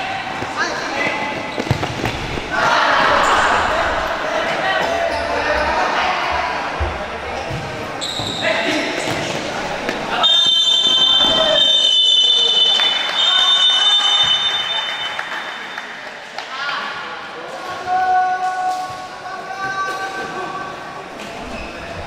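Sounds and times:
voices echoing in a hall: 0.0 - 22.0
referee's whistle blast: 10.2 - 15.7.

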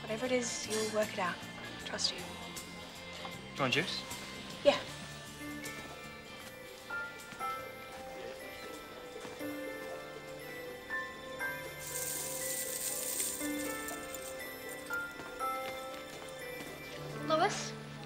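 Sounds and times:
background music with held notes: 0.0 - 18.0.

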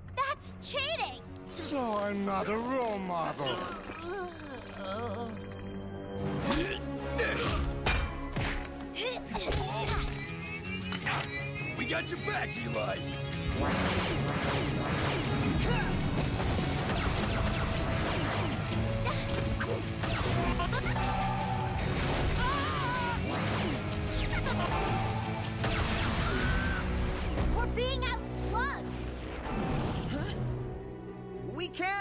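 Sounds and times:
action music score: 0.0 - 32.0
cartoon blaster shots: 13.6 - 18.6, 25.6 - 26.7.

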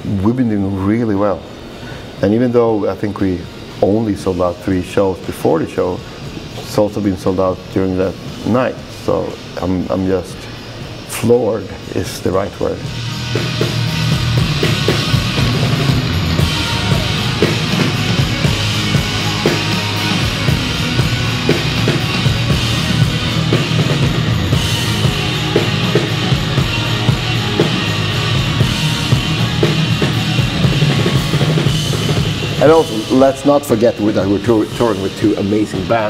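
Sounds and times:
drum kit: 10.8 - 36.0
heavy rock band playing: 12.9 - 33.6.

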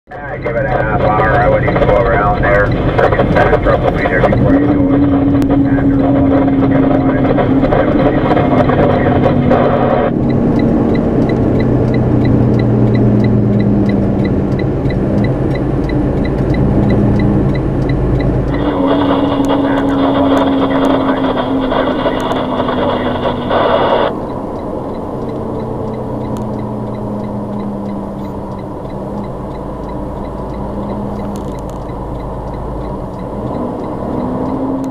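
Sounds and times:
truck engine slowing: 0.1 - 34.9.

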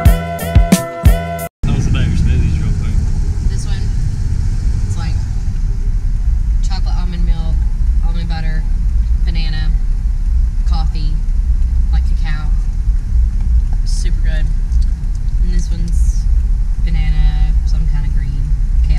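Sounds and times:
car cabin rumble: 1.6 - 18.9.

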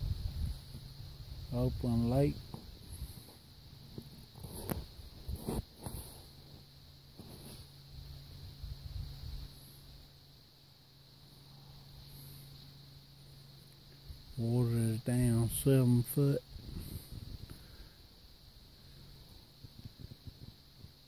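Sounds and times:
insects chorus: 0.0 - 21.0.

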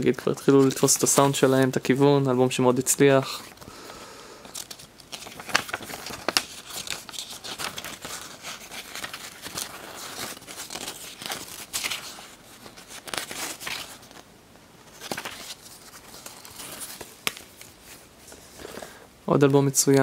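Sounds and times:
paper and card rustling: 0.0 - 3.8, 4.4 - 20.0.

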